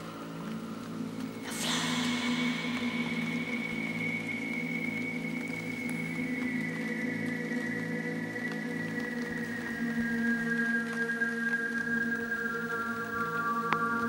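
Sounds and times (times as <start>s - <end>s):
synthesizer drones: 0.0s - 14.0s.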